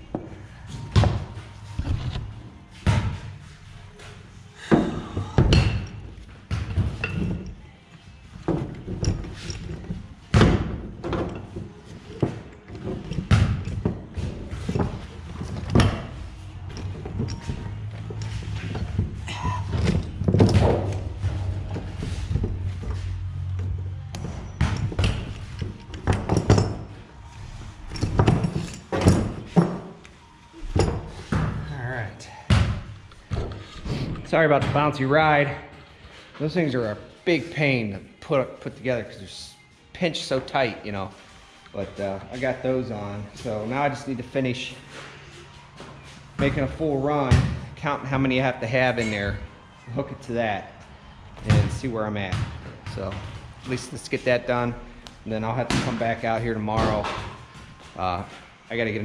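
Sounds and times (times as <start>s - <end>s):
knocks of steel chain and tools: 6.7s - 7.6s, 8.4s - 23.0s, 24.1s - 30.0s.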